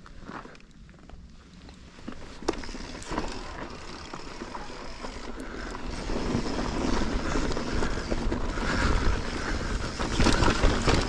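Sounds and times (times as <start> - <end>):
bike tyres rolling over dirt: 0.0 - 11.0
bike clicks and knocks: 0.2 - 9.1, 9.8 - 11.0
wind buffeting microphone: 4.8 - 11.0.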